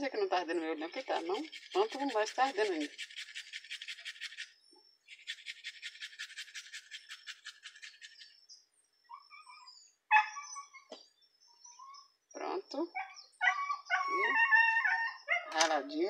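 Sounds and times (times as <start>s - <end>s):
hand grater rasping onion: 0.9s - 4.5s
dog barking: 10.1s - 10.6s.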